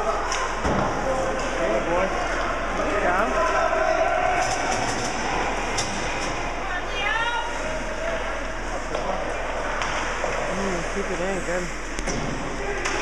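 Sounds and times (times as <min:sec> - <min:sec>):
ice rink crowd din: 0:00.0 - 0:13.0.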